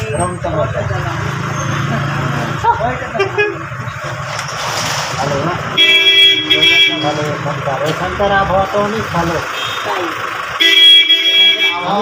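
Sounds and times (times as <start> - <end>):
people's voices: 0.0 - 10.6, 11.2 - 12.0
vehicle engine humming: 0.0 - 12.0.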